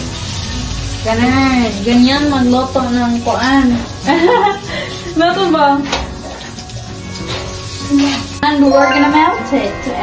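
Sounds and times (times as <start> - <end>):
butter hissing in a hot wok: 0.0 - 8.5
background music: 3.5 - 10.0
person speaking: 8.7 - 10.0.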